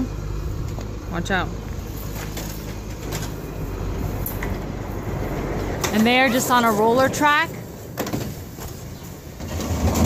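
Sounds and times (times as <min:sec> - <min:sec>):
sliding door rolling on track: 0:02.3 - 0:10.0.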